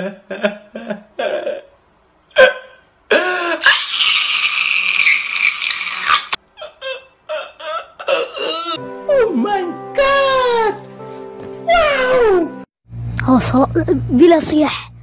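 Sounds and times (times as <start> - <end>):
man crying and wailing: 0.0 - 4.0, 6.6 - 10.8, 11.7 - 12.6
sobbing gasps: 2.4 - 3.7.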